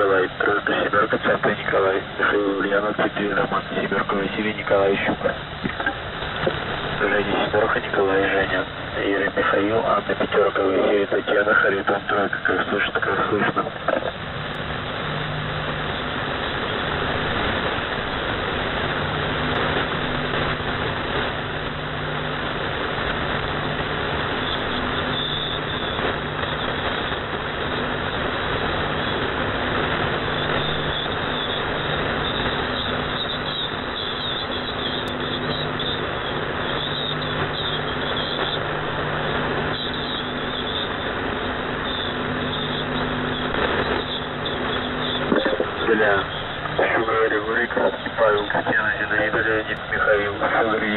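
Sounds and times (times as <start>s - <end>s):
low hum: 0.0s - 50.9s
radio band noise and hiss: 0.0s - 50.9s.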